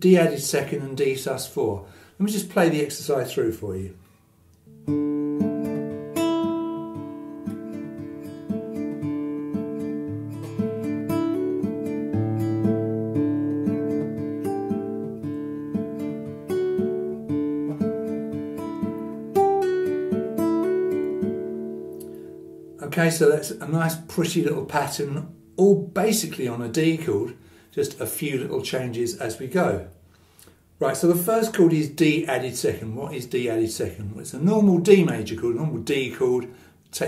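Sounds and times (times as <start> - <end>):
fingerpicked classical guitar: 4.0 - 27.6.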